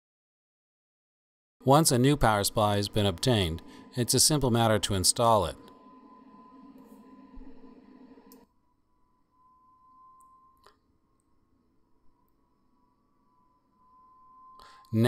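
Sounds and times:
low hum: 1.7 - 14.9
thin steady tone: 1.7 - 15.0.

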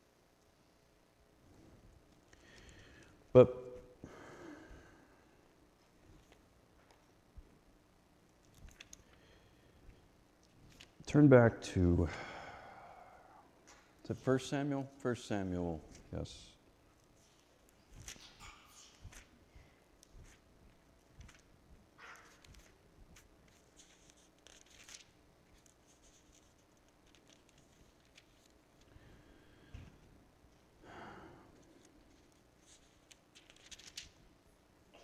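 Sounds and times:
man sighing: 3.4 - 5.1, 12.0 - 13.5
thin pages rustling: 8.4 - 9.2, 21.0 - 28.9, 31.6 - 34.2.

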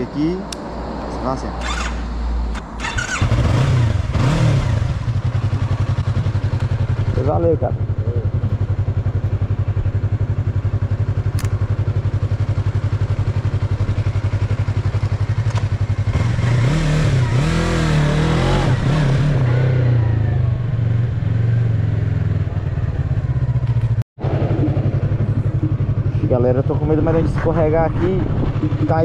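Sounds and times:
motorcycle engine idling: 4.9 - 16.3, 20.0 - 29.0.

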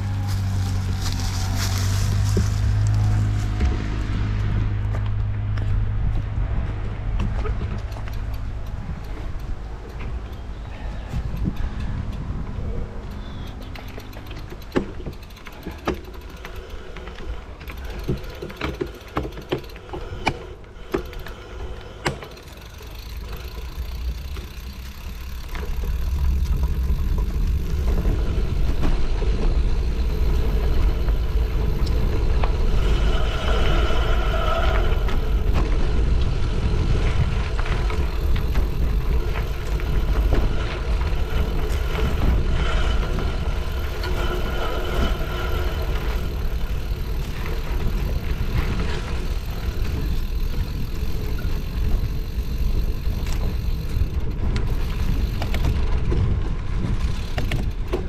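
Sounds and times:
bike rattling over rough ground: 0.0 - 58.0
wind and tyre rumble: 0.0 - 58.0.

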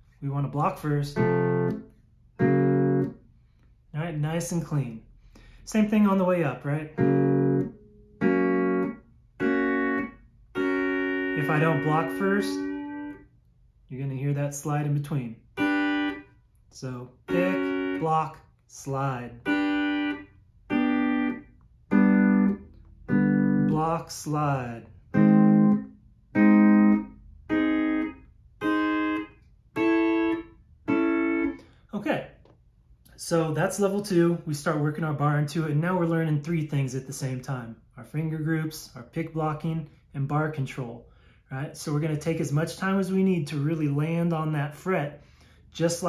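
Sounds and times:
pedal steel guitar chords: 1.0 - 3.2, 6.8 - 13.2, 15.5 - 16.2, 17.2 - 31.8.

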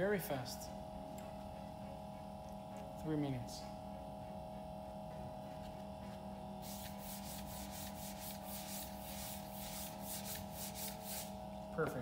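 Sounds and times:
gloved hand rubbing metal plate: 6.6 - 11.4.

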